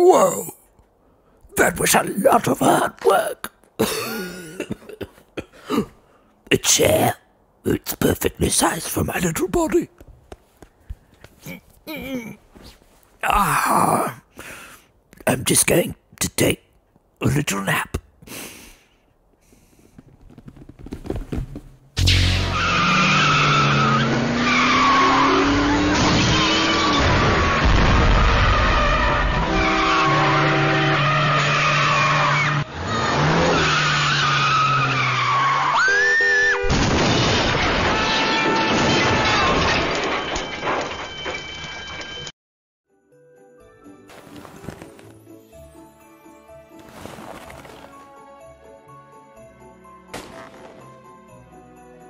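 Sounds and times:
falling debris clattering: 0:36.7 - 0:41.5
loud crash rumbling: 0:36.7 - 0:41.5.

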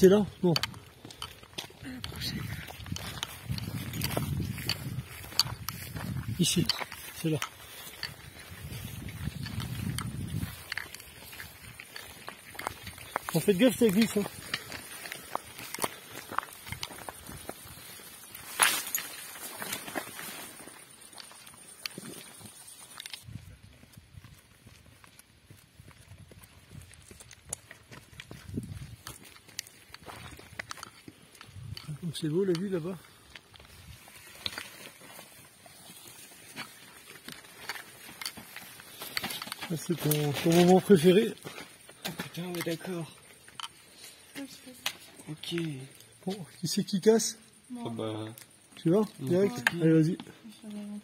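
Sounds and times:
footsteps on stony trail: 0:00.0 - 0:46.7
clothing and gear rustling: 0:00.7 - 0:23.3, 0:28.4 - 0:45.2.

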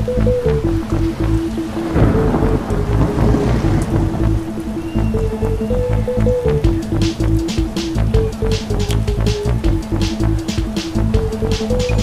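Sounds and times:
electronic music: 0:00.0 - 0:12.0
rain and thunder: 0:00.9 - 0:05.0.

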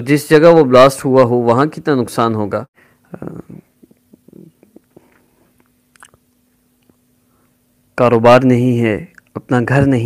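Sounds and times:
faint steady hum: 0:00.0 - 0:10.0
mouth clicks: 0:03.8 - 0:07.0.

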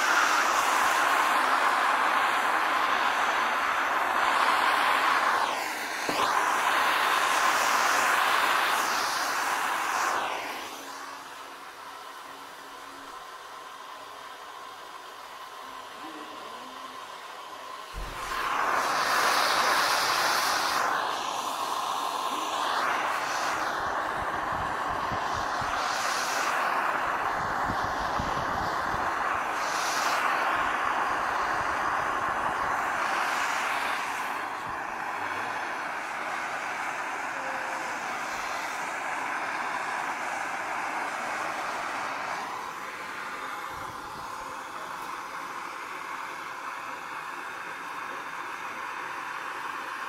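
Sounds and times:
gas torch flame hissing: 0:00.0 - 0:50.0.

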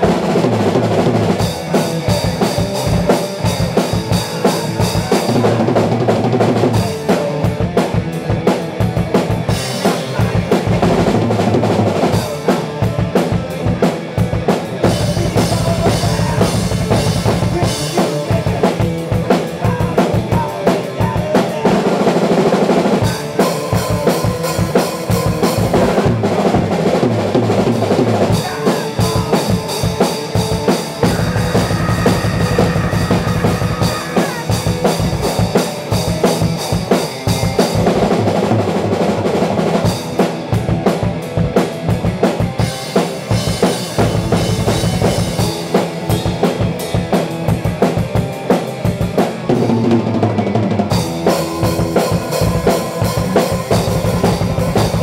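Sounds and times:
drum kit beat: 0:00.0 - 0:55.0
electric guitar chords: 0:00.0 - 0:55.0.

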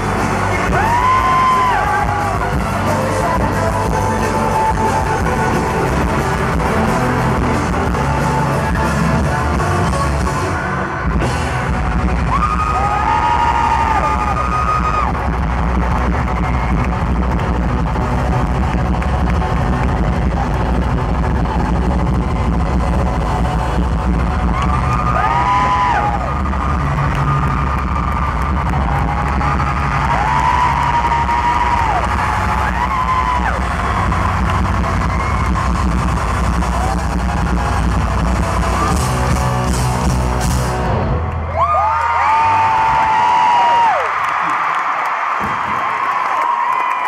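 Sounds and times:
pop-rock band playing loudly: 0:00.0 - 0:41.6
crowd screaming: 0:00.0 - 0:47.0.

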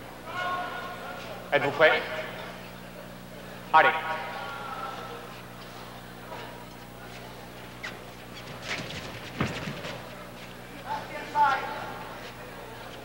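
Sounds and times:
steady low hum: 0:00.0 - 0:13.0
referee shouting: 0:00.2 - 0:01.1.

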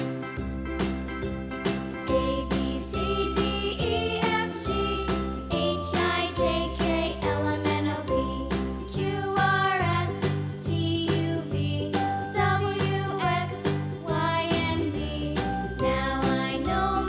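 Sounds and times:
tinkling children's tune: 0:01.6 - 0:17.0.

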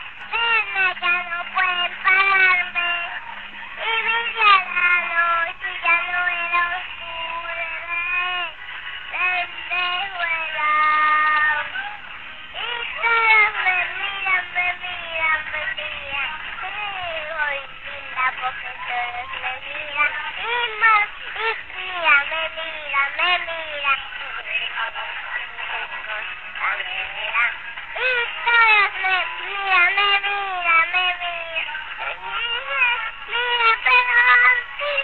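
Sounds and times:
faint backing music: 0:00.0 - 0:35.0.

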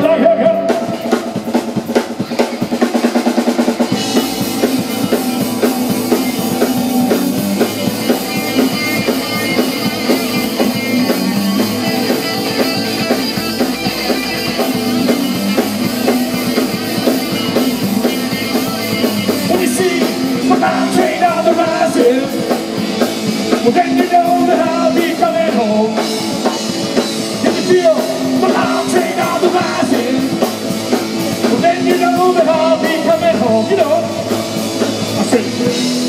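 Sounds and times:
drum kit: 0:00.0 - 0:36.0
electric guitars: 0:00.0 - 0:36.0.

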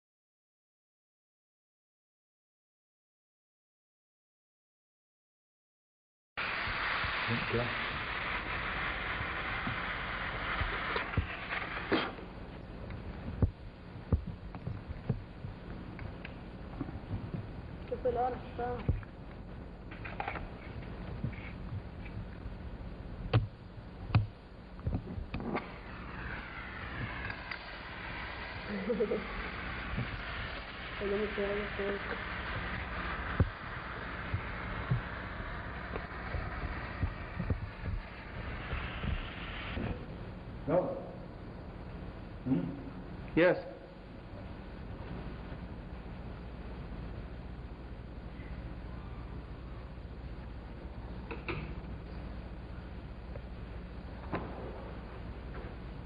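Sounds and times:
steady rushing hiss: 0:06.4 - 0:56.0
dull low thumps: 0:13.2 - 0:15.7.

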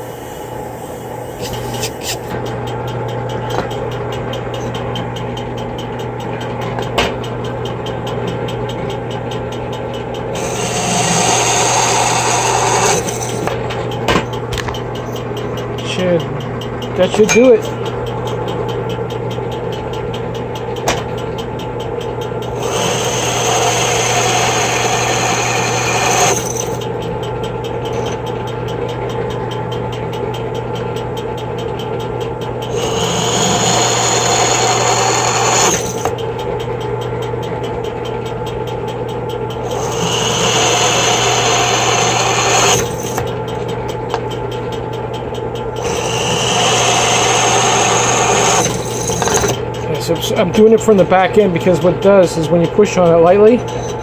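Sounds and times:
drill press motor running: 0:06.8 - 0:21.4, 0:22.2 - 0:36.8, 0:38.1 - 0:54.0
drill bit cutting aluminium: 0:10.4 - 0:13.5, 0:22.5 - 0:26.8, 0:32.7 - 0:36.1, 0:39.6 - 0:43.2, 0:45.8 - 0:49.6.

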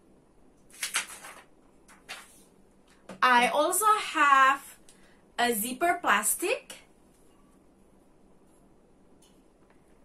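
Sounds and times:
objects rustling on a table: 0:00.6 - 0:03.2.

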